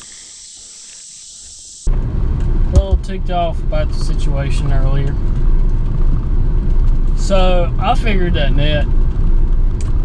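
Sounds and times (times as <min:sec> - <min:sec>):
insects buzzing: 0:00.0 - 0:01.9.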